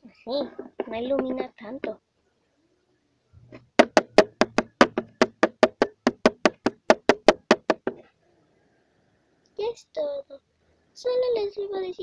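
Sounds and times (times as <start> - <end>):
sharp knocks on hard surface: 0.6 - 2.0, 3.5 - 8.0.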